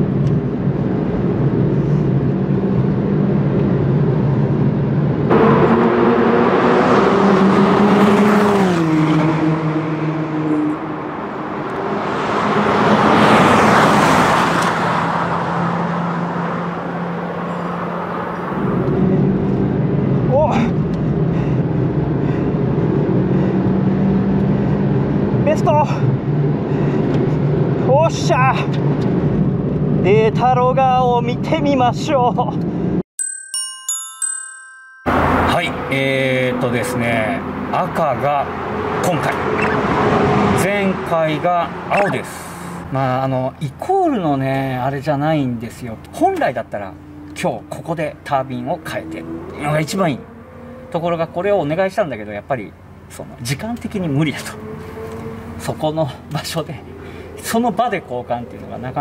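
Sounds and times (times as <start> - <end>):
car engine at full throttle: 0.0 - 30.2, 35.1 - 59.0
car passing by: 5.3 - 19.4, 35.1 - 43.0, 53.9 - 59.0.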